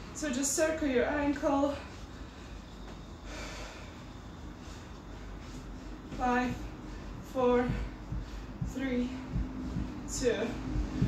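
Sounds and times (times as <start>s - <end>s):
faint room noise: 0.0s - 11.0s
woman breathing: 1.4s - 11.0s.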